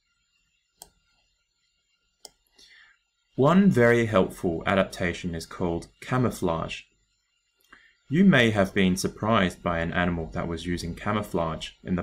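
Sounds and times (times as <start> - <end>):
computer mouse click: 0.8 - 1.0.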